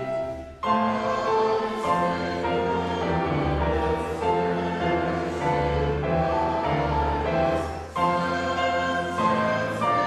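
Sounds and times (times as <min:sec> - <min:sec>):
congregation singing a hymn: 0:00.0 - 0:10.0.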